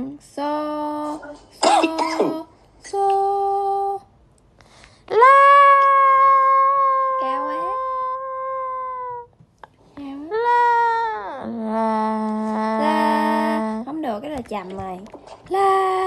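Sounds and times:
woman singing held notes: 11.6s - 13.9s.

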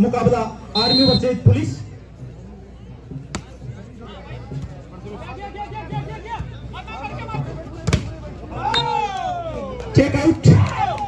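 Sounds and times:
faint crowd murmur: 0.0s - 11.0s.

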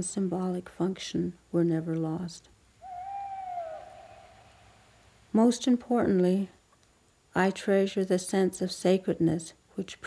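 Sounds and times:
long whistle-like note: 2.8s - 5.0s.

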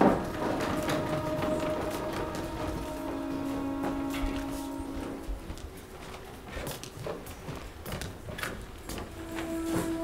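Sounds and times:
footsteps on stage floor: 0.0s - 10.0s
wheeled bed rolling: 0.0s - 10.0s
music held note: 0.1s - 5.7s, 9.2s - 10.0s.

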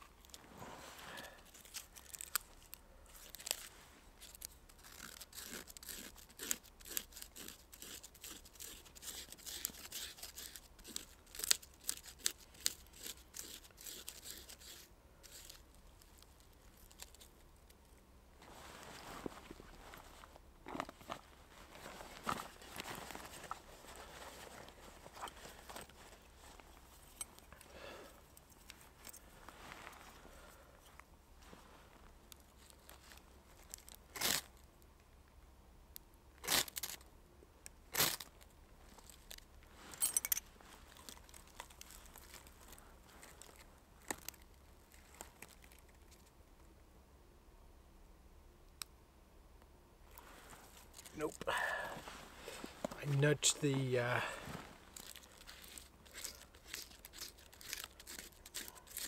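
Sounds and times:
handling and rustling: 0.0s - 34.6s, 37.9s - 46.4s, 50.1s - 59.0s
knife scraping bark: 3.4s - 15.6s, 55.7s - 59.0s.

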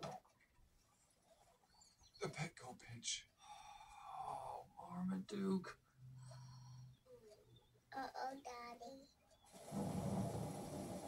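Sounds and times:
heavy rain on television: 9.5s - 11.0s.

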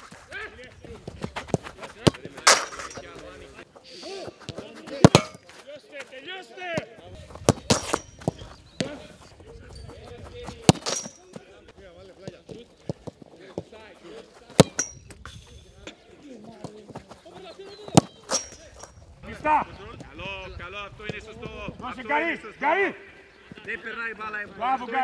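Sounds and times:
football kick thuds: 0.0s - 3.3s, 4.4s - 5.5s, 6.7s - 11.5s
distant players shouting: 0.0s - 12.0s.

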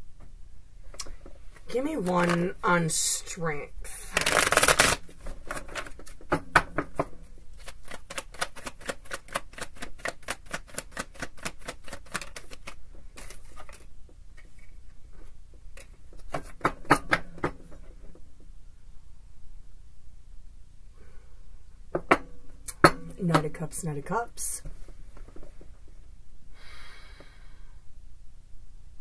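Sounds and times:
cards being shuffled: 2.0s - 2.5s, 4.1s - 6.2s, 7.6s - 14.8s.

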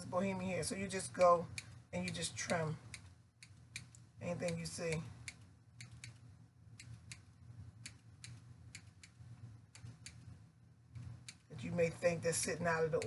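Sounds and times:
steady low hum: 0.0s - 13.0s
scissors snipping hair: 1.1s - 6.2s.

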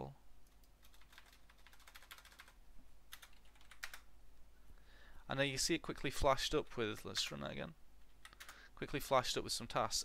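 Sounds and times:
typing on computer keyboard: 0.4s - 4.1s.

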